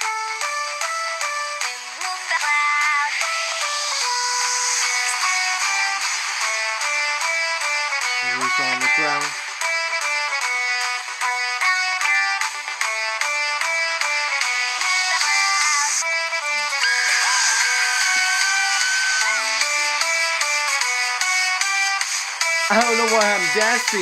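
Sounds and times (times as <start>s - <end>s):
upbeat cartoon brass music: 5.4s - 21.9s, 22.5s - 24.0s.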